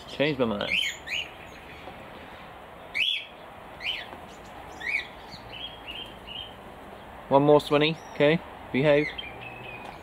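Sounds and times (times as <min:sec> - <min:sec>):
bird chirping: 0:00.5 - 0:10.0.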